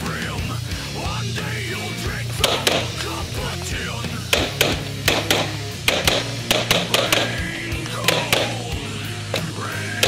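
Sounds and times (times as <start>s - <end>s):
rock music: 0.0s - 10.0s
pistol shots: 2.4s - 3.0s, 4.2s - 8.7s.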